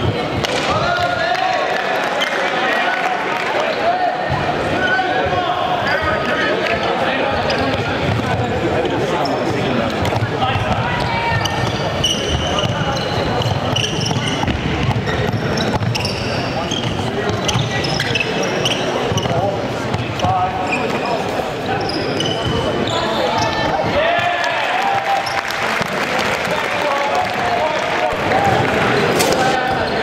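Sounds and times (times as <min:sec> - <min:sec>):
people talking and calling: 0:00.0 - 0:30.0
sneakers squeaking: 0:04.2 - 0:24.0, 0:25.1 - 0:25.9, 0:28.1 - 0:30.0.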